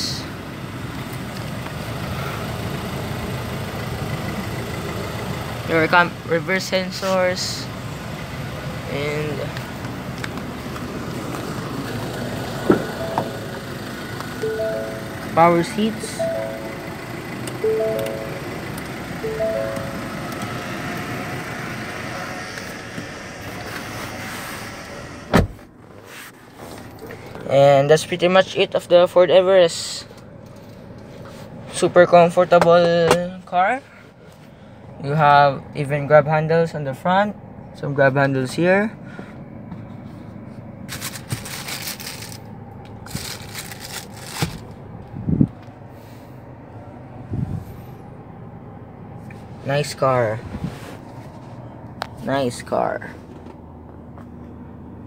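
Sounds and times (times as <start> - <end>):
low hum of car cabin: 0.0 - 55.0
power seat motor running: 9.6 - 25.6.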